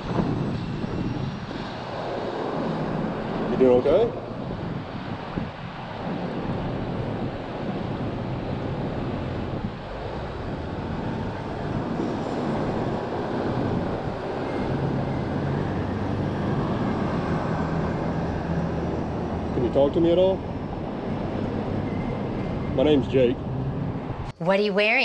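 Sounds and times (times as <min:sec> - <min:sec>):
passing vehicle engine hum: 0:00.0 - 0:24.3
road traffic noise: 0:00.0 - 0:25.0
wind on microphone: 0:00.0 - 0:25.0.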